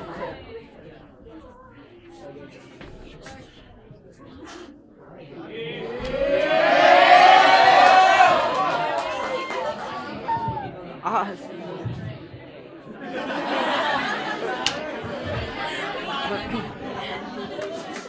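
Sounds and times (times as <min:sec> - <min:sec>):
audience chattering: 0:00.0 - 0:18.0.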